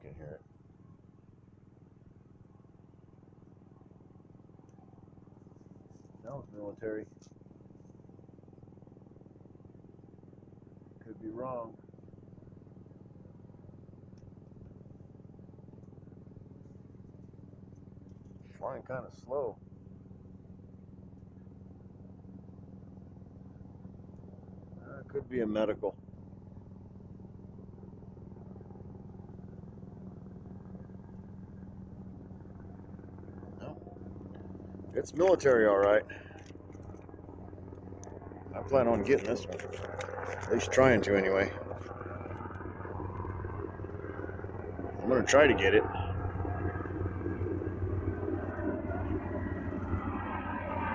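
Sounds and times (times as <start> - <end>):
distant aircraft engine drone: 0.0 - 50.9.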